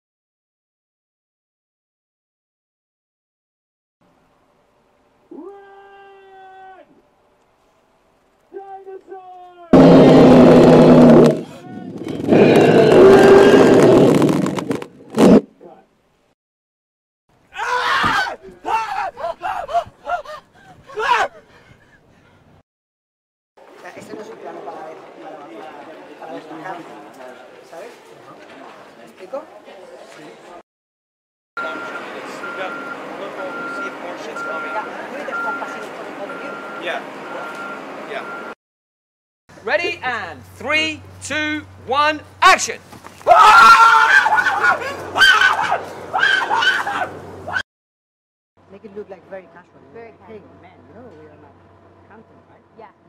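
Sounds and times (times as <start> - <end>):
roar: 9.8 - 11.6, 12.2 - 14.5
blast with deep hum: 9.8 - 14.3
people talking: 11.4 - 12.8, 31.6 - 38.3, 39.6 - 42.8
vehicle reversing alarm beeping: 31.6 - 38.6.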